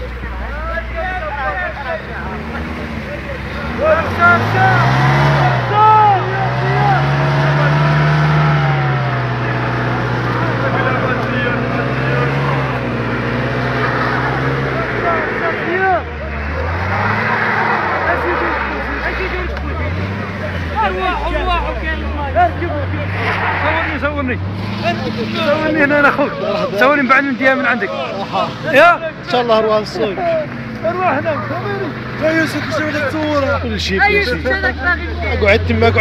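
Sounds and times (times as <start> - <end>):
men shouting: 0.0 - 16.1, 16.7 - 36.0
car engine revving: 0.0 - 36.0.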